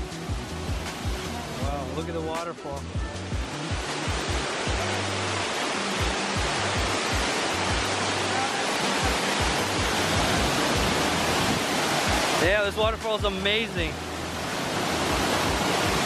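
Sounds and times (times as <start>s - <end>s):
background music with low beat: 0.0s - 8.3s, 9.0s - 16.0s
waterfall rushing over rocks: 0.0s - 16.0s.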